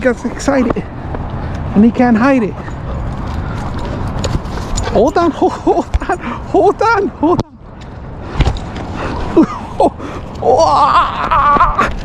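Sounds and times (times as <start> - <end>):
wind rumble on camera: 0.0 - 12.0.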